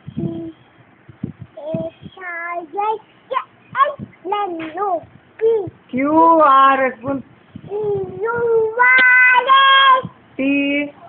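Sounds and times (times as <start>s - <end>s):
young boy singing: 0.0s - 0.7s, 1.5s - 5.9s, 7.6s - 10.2s.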